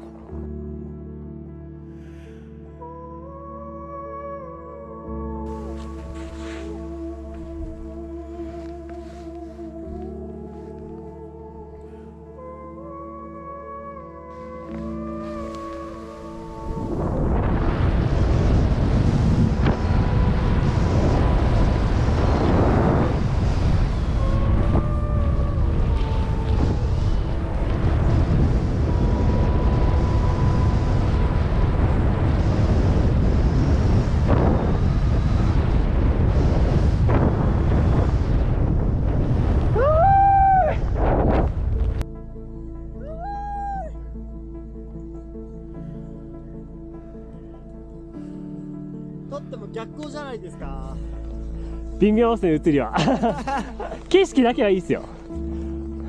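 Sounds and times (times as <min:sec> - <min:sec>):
background music: 0:00.0 - 0:56.0
skis hissing through snow: 0:05.5 - 0:09.6
wind rushing over microphone: 0:15.1 - 0:42.1.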